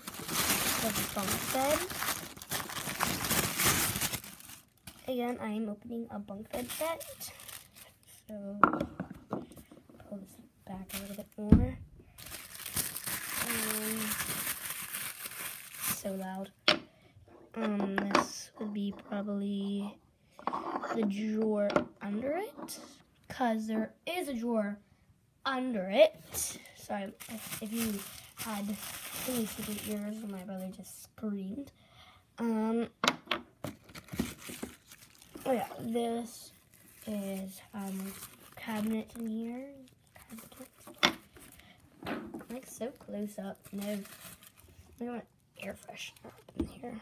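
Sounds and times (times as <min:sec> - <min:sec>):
tissue paper crinkling: 0:00.0 - 0:05.2, 0:06.5 - 0:08.0, 0:10.7 - 0:11.4, 0:12.2 - 0:16.4, 0:27.1 - 0:30.4, 0:33.8 - 0:41.6, 0:42.5 - 0:45.0.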